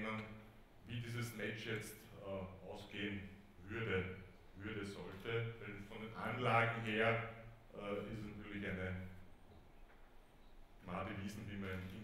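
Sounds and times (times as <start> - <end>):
man speaking: 0.0 - 9.2, 10.8 - 12.0.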